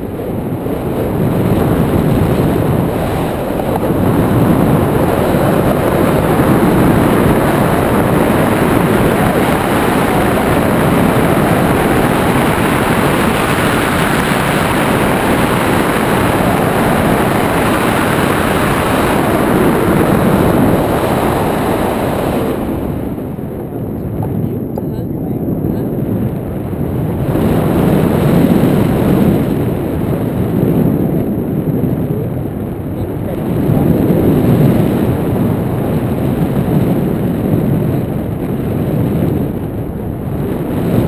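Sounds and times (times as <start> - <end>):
wind rushing over microphone: 0.0 - 41.0.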